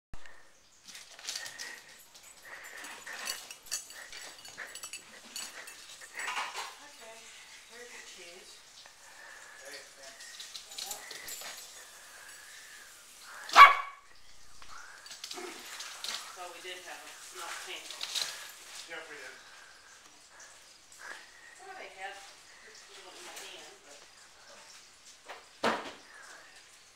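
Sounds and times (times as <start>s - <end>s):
faint scattered sounds: 0.2s - 26.9s
small dog barking: 13.4s - 14.1s.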